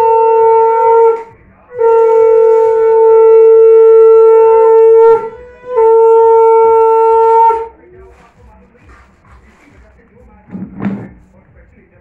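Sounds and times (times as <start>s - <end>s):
conch shell blown: 0.0s - 7.8s.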